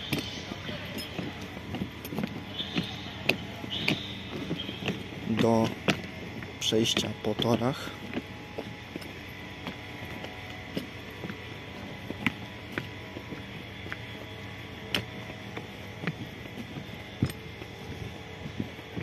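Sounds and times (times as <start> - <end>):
footsteps on rubber mats: 0.0 - 19.0
steady low hum: 0.0 - 19.0.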